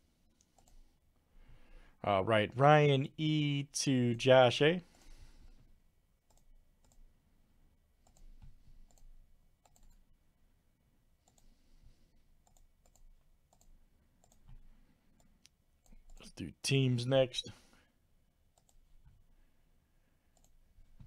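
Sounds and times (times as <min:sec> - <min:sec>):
faint computer mouse clicks: 0:00.4 - 0:00.9, 0:08.0 - 0:10.0, 0:11.2 - 0:11.6, 0:12.4 - 0:16.2, 0:18.5 - 0:18.8, 0:20.4 - 0:20.6.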